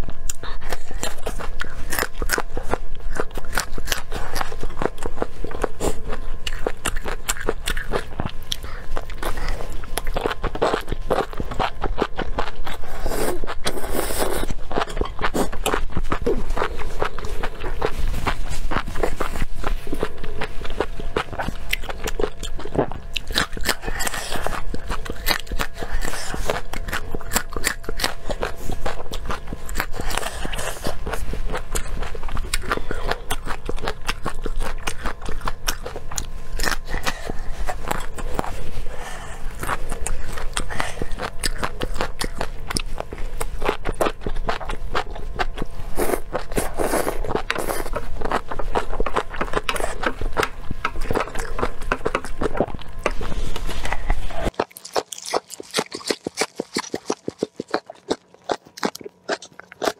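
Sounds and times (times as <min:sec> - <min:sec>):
chewing and crunching peppers: 0:00.0 - 0:59.9.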